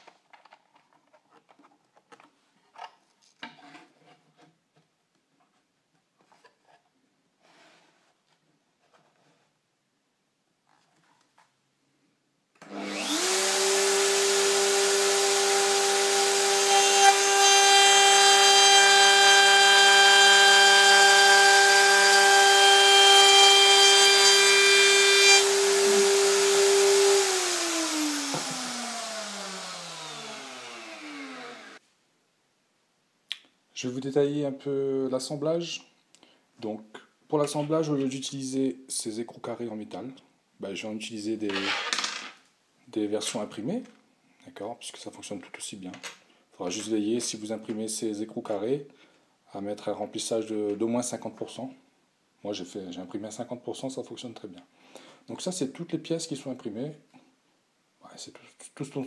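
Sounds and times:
router spinning down: 12.6 - 31.8
router whining: 12.6 - 31.8.

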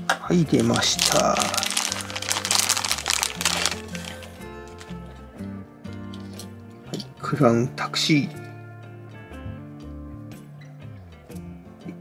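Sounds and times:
background music: 0.0 - 12.0
plastic bag crinkling: 0.5 - 5.0.

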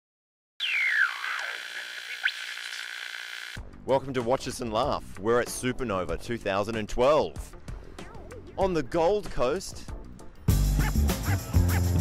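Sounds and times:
man speaking: 8.5 - 9.9.

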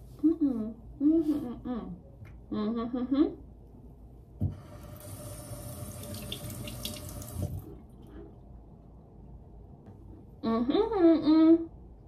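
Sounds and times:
sink tap running: 4.6 - 7.7.

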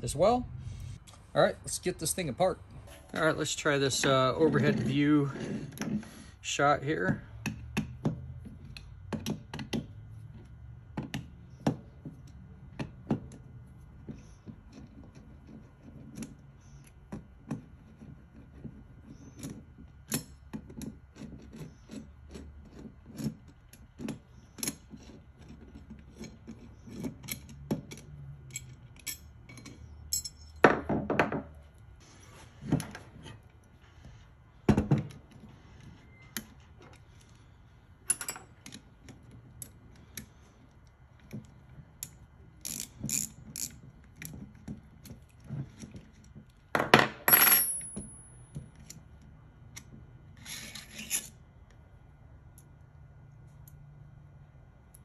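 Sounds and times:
metal parts clicking on workbench: 38.1 - 38.9.

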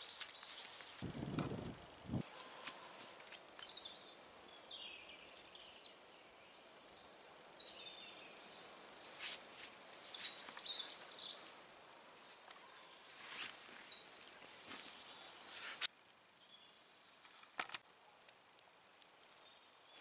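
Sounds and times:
songbird singing with trill: 3.6 - 9.2, 12.5 - 17.2
rustles of movement: 9.1 - 15.9.

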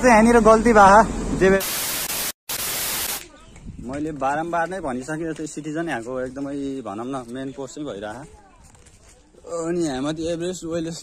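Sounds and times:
static hiss burst: 1.6 - 3.3.

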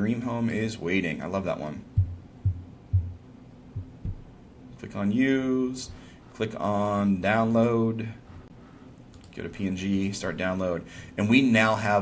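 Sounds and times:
low dull thumps: 1.9 - 4.4.

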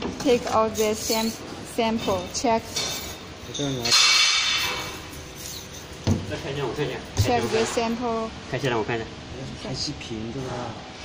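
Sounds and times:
metal canister scraping and clinking: 2.0 - 8.0.

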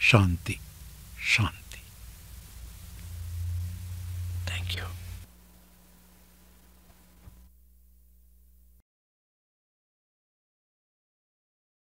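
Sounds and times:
faint hiss: 0.0 - 8.8
steady low hum: 0.0 - 8.8
person whispering: 1.2 - 1.9, 4.4 - 5.3.

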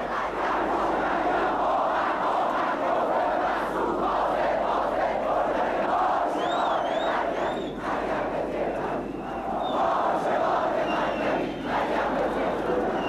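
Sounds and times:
crowd cheering and chanting: 0.0 - 13.0.

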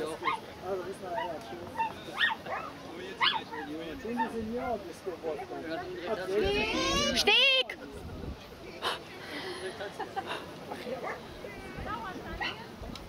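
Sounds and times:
dog yipping: 1.2 - 4.3.

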